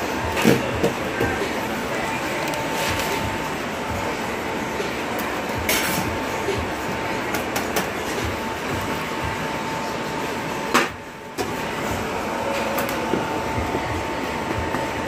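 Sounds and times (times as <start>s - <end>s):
kitchen equipment whirring: 0.0s - 15.0s.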